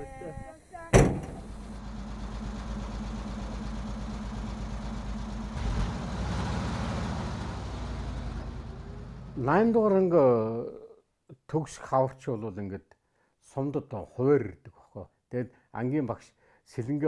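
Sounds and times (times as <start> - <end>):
cab door slamming: 0.9 - 1.7
truck engine running: 1.0 - 9.5.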